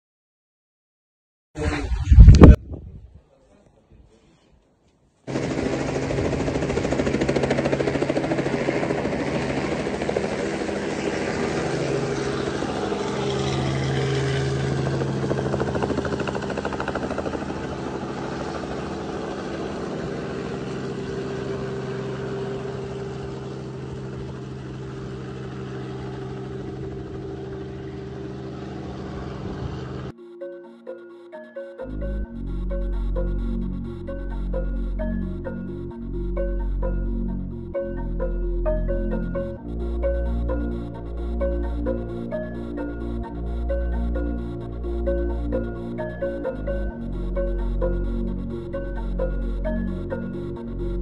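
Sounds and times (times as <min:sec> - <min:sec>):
helicopter rotor and engine drone: 0:05.3 - 0:30.1, 0:32.5 - 0:51.0.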